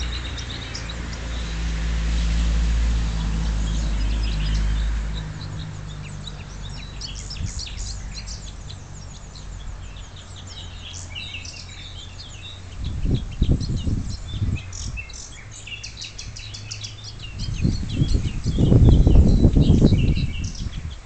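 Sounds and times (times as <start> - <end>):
low rumbling on microphone: 0.0 - 21.0
songbirds chirping and singing: 0.0 - 21.0.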